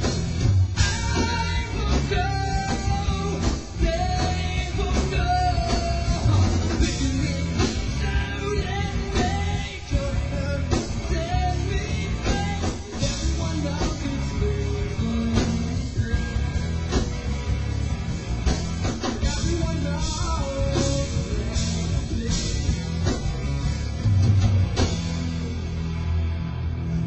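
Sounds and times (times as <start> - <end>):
rock band playing live: 0.0 - 27.0.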